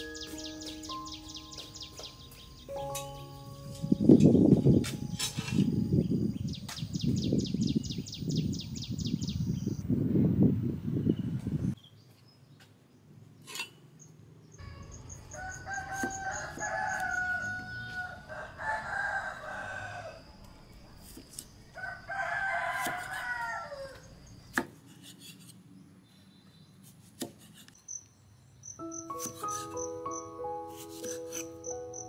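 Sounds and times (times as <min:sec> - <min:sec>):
music: 0:00.0 - 0:05.8, 0:28.8 - 0:32.0
rooster crowing: 0:15.0 - 0:20.5, 0:21.7 - 0:24.1.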